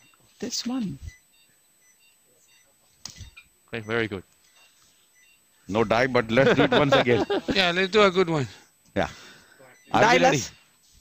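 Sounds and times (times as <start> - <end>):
short electronic beeps: 1.0 - 5.4.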